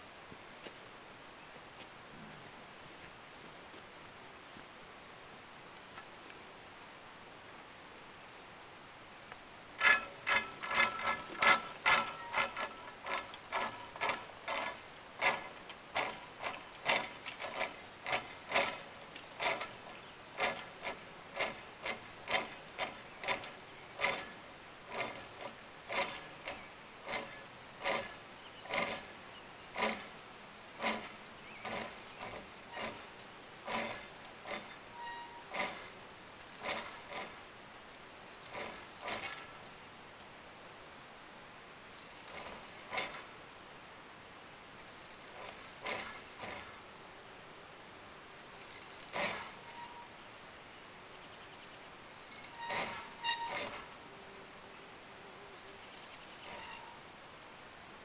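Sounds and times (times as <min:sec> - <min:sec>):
mechanical ratchet clicking: 0:09.8 - 0:39.5, 0:41.9 - 0:43.3, 0:44.8 - 0:46.7, 0:48.4 - 0:50.0, 0:52.0 - 0:53.9.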